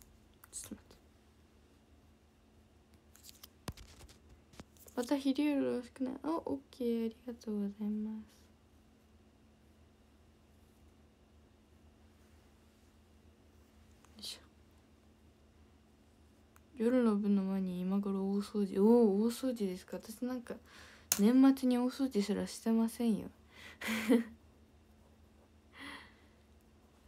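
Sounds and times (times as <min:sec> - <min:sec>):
faint steady hum: 0:00.0 - 0:27.0
woman whispering: 0:00.4 - 0:01.0, 0:14.1 - 0:14.6
comb scratching through hair: 0:03.2 - 0:05.1.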